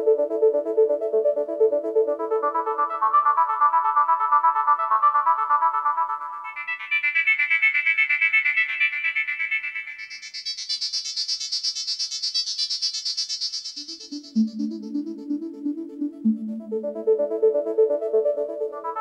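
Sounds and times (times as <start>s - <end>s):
synthesizer bleeping notes: 14.1s - 19.0s.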